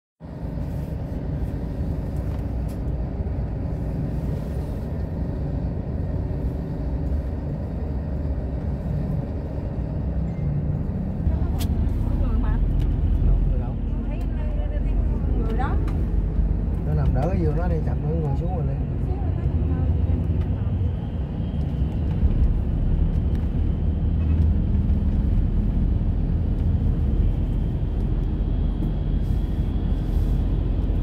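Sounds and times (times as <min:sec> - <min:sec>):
bus engine and road rumble: 0:00.2 - 0:31.0
people talking: 0:11.3 - 0:16.0, 0:16.8 - 0:21.2.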